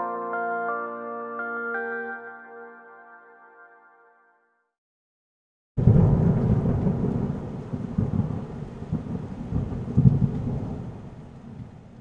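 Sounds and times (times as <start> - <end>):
thunder-like rumble: 5.8 - 12.0.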